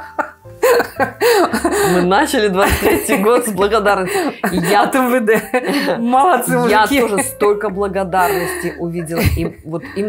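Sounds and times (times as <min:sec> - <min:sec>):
woman laughing: 0:00.0 - 0:10.0
woman speaking: 0:01.7 - 0:10.0.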